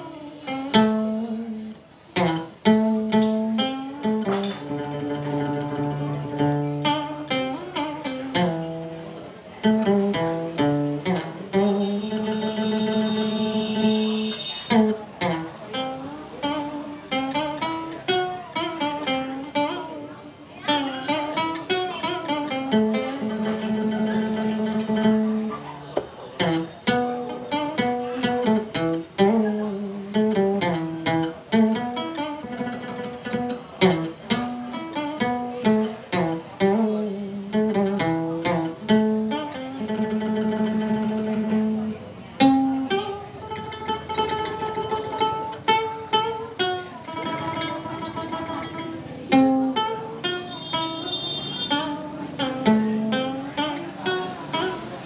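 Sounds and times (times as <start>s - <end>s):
plucked lute melody: 0.0s - 55.0s.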